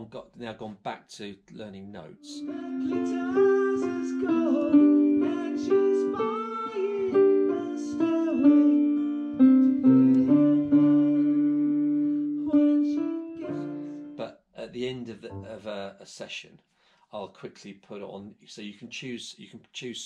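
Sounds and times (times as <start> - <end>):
digital piano melody over chords: 2.3 - 14.2, 15.3 - 15.7.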